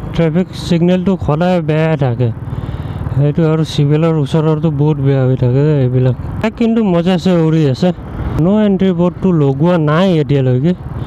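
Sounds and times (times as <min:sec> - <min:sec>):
motorcycle rumble: 0:00.0 - 0:11.0.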